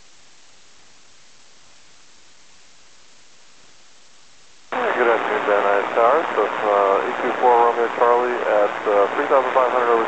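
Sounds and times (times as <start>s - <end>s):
radio receiver hiss: 4.7s - 10.0s
radio voice: 4.8s - 10.0s.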